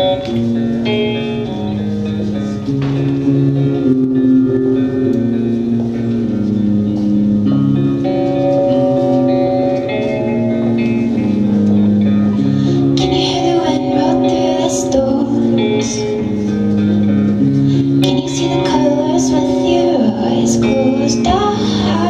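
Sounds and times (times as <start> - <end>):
electric guitar chords: 0.0 - 22.0.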